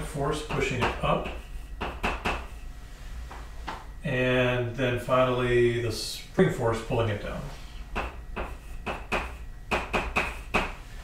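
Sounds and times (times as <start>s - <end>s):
chalk tapping and scratching: 0.5s - 2.7s, 7.9s - 10.8s.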